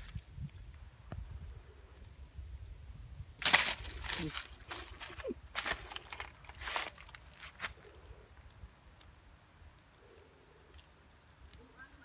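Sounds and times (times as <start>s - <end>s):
monkeys scrambling over dry leaves: 3.4s - 8.0s.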